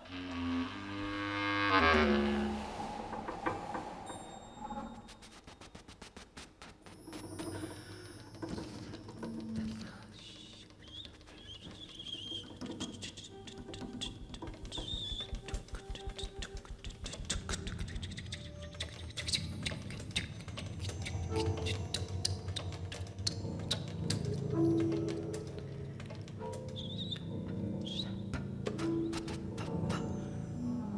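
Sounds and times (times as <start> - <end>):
held higher note: 0.7 - 5.5
warbling high squeak: 1.1 - 5.6
mark tree chimes shimmering: 2.1 - 5.4
light percussive ticks: 12.6 - 30.0.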